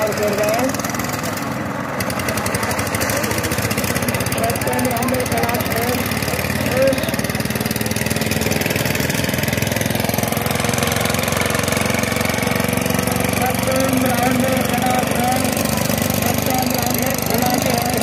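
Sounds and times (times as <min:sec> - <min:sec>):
diesel tiller engines running: 0:00.0 - 0:18.0.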